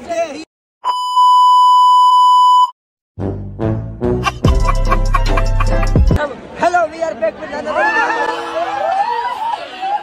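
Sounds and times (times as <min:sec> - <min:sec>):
high-pitched censor beep: 0:00.8 - 0:02.8.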